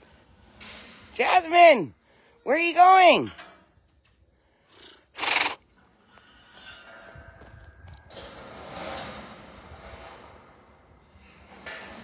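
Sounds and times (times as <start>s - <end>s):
tiger hissing: 4.7s - 5.6s.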